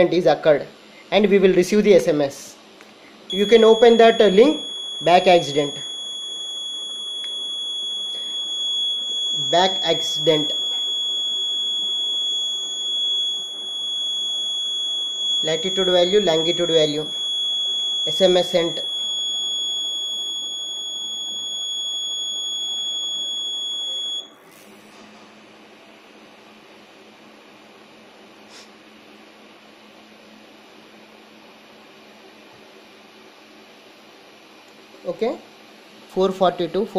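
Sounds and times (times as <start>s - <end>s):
high-pitched buzzer tone: 3.3s - 25.0s.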